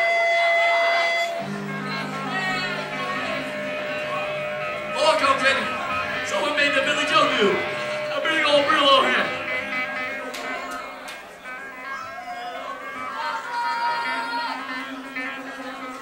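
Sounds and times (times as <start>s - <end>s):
voices shouting and talking: 0.0s - 16.0s
electric guitar chord ringing: 1.1s - 13.3s.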